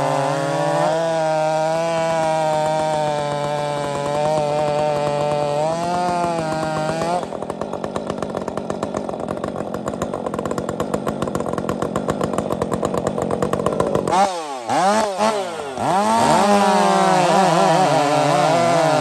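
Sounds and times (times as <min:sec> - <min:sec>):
chainsaws cutting log: 0:00.0 - 0:19.0.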